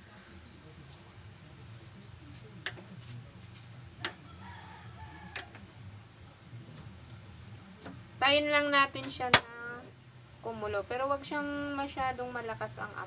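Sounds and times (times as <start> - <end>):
distant rooster crowing: 4.1 - 5.8.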